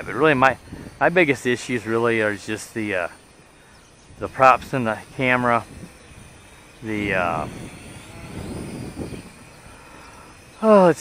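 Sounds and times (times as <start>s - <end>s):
toy quadcopter motors whining: 0.0s - 11.0s.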